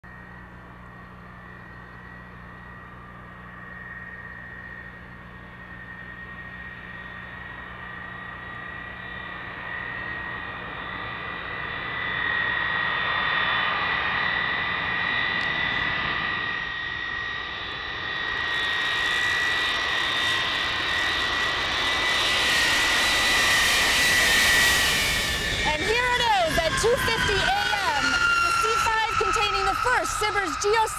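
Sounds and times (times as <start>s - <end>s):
jet engines whining: 0.0s - 30.9s.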